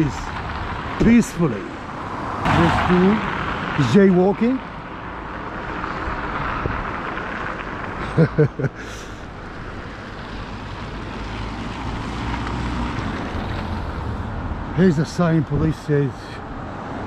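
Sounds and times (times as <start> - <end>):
low vehicle rumble: 0.0 - 17.0
tyres hissing on wet road: 5.5 - 17.0.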